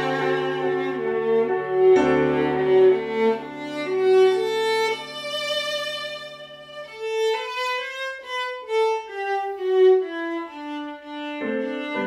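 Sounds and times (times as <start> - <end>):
digital piano accompaniment: 0.0 - 12.0
viola melody: 0.0 - 12.0.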